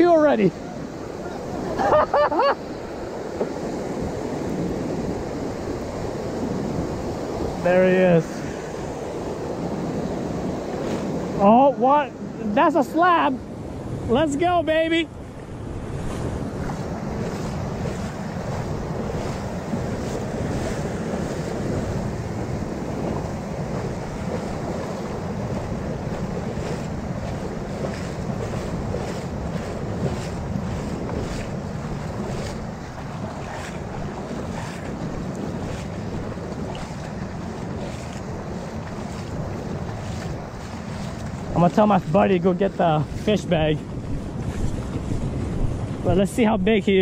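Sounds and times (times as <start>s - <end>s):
shallow surf washing: 0.0s - 47.0s
wind buffeting microphone: 0.0s - 47.0s.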